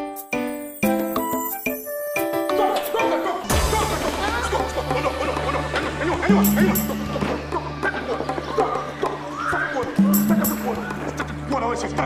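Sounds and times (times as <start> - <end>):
low background music drone: 3.5 - 12.0.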